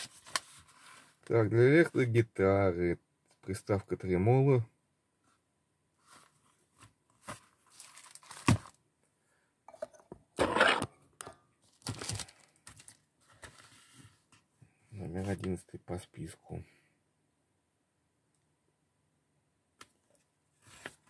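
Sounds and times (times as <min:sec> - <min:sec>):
book pages rustling: 0:00.0 - 0:01.2, 0:06.0 - 0:08.8, 0:11.7 - 0:14.4, 0:20.2 - 0:21.0.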